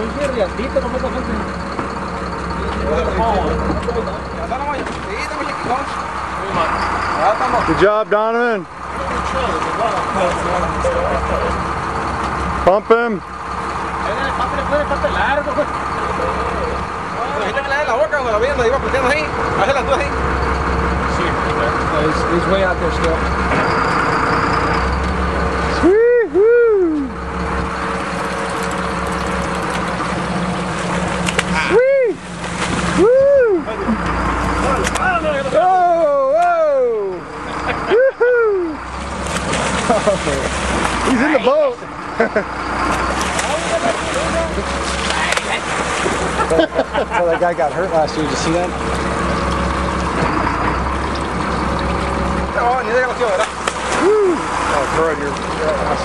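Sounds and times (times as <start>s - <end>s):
boat engine droning: 0.0s - 56.0s
voices calling out: 0.0s - 56.0s
excited shouts and whoops: 25.8s - 27.2s, 31.6s - 32.2s, 32.9s - 33.8s, 35.6s - 37.2s, 37.9s - 38.8s, 54.0s - 54.5s
fish thrashing and splashing: 27.4s - 33.1s, 38.8s - 41.4s, 42.7s - 56.0s.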